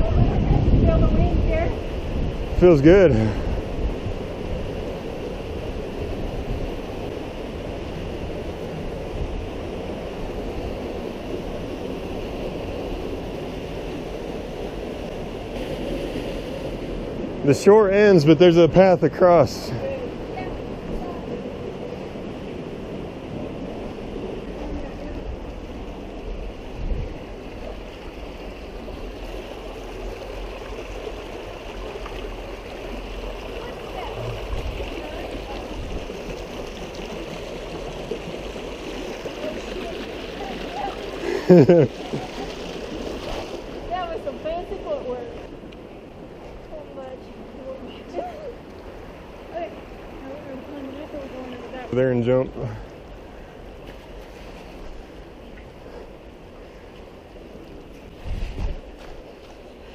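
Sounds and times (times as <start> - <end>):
wind buffeting microphone: 0.0 - 17.5, 19.7 - 51.9, 53.0 - 59.9
creek running over rocks: 0.0 - 59.9
person laughing: 41.2 - 42.5.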